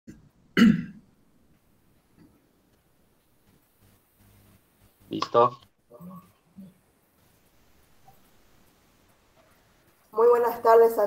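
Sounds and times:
person clearing throat: 0.6 - 1.0.

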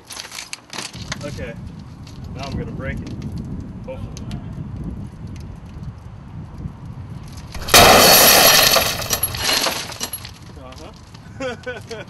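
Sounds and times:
glass fragments tinkling: 7.6 - 10.3
safety glass shattering: 7.6 - 10.3.

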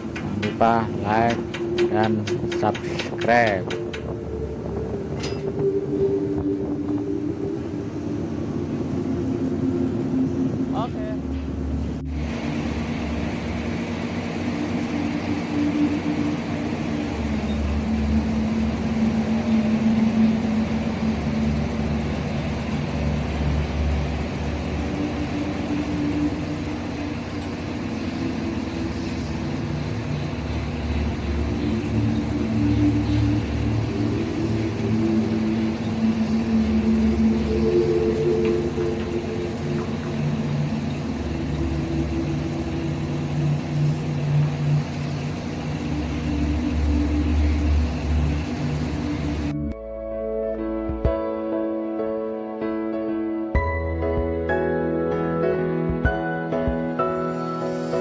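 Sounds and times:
deck machinery running: 0.0 - 49.9
low engine throb: 0.0 - 51.3.

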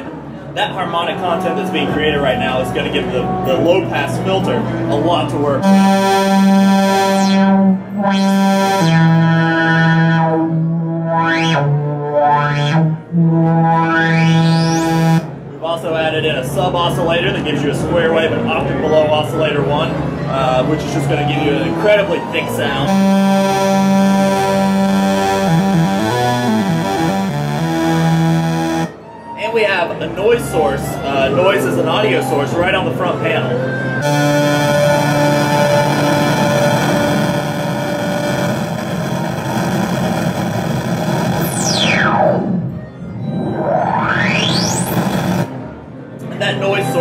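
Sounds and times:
analog synthesizer filter sweeps: 1.5 - 15.5, 22.6 - 29.0, 34.0 - 45.8.

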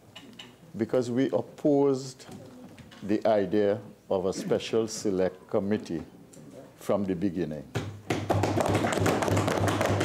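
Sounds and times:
thumping on wooden desks: 7.8 - 10.0.

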